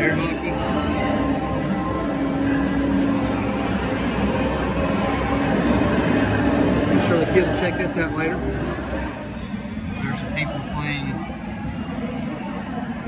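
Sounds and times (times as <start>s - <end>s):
steady drone of machines: 0.0s - 13.0s.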